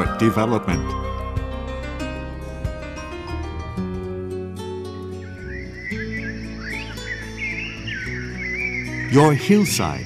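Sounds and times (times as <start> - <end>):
held low chords music: 0.0 - 9.9.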